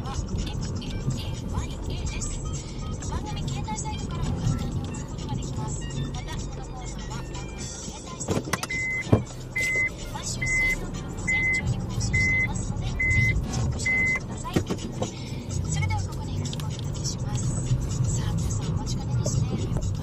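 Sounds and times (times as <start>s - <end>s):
car engine running: 0.0s - 20.0s
reverse warning buzzer beeping: 8.7s - 14.2s.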